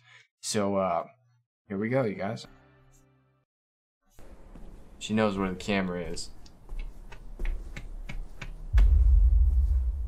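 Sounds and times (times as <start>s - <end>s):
deep bass rumble: 8.8s - 10.0s.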